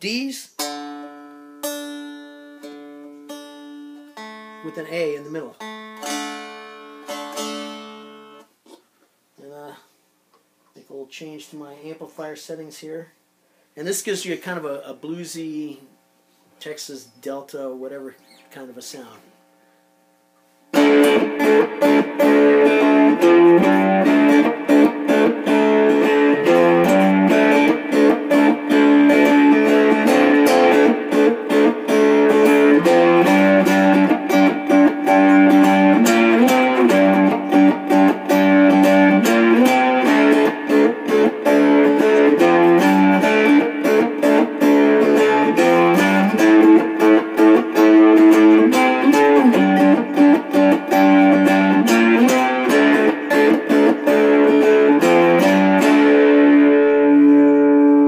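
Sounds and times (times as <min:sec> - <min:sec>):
amplified bluesy guitar playing: 0:00.6 - 0:08.6, 0:20.7 - 0:58.0.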